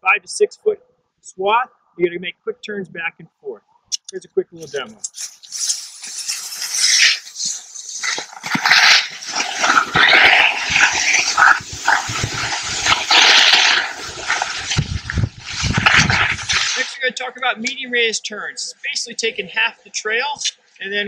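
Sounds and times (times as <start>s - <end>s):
skis scraping on snow: 4.6s - 17.0s
wind rumbling on microphone: 6.8s - 16.9s.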